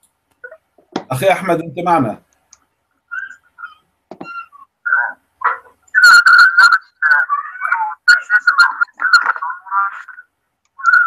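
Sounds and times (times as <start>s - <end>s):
garbled distorted call audio: 3.0s - 11.0s.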